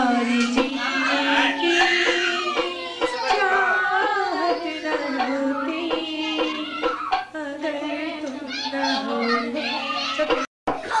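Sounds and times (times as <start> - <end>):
children's voices: 0.0 - 11.0.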